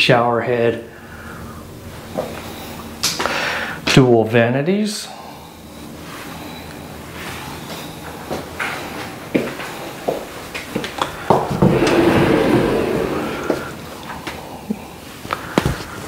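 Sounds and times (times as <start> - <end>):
closet door scraping open: 11.6 - 13.9.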